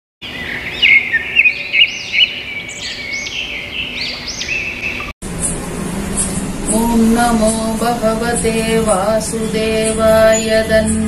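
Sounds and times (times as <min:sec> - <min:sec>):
birds chirping: 0:00.2 - 0:11.0.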